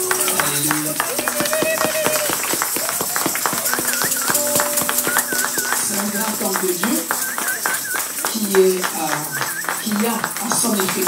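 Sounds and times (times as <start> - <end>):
congregation clapping: 0.0 - 11.0
held keyboard notes: 0.0 - 11.0
voices calling out: 0.0 - 11.0
person speaking: 3.4 - 11.0.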